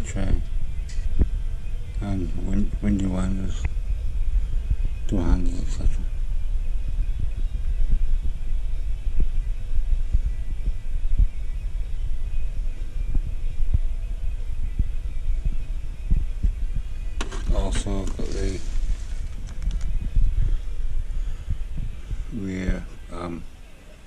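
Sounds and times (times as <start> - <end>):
microphone handling rumble: 0.0 - 23.6.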